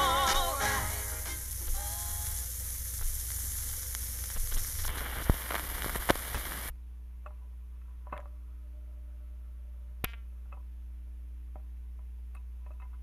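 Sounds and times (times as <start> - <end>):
song from phonograph speaker: 0.0 - 6.7
low amplifier hum: 0.0 - 13.0
record needle crackle and hiss: 0.0 - 13.0
sharp clicks: 3.0 - 6.7.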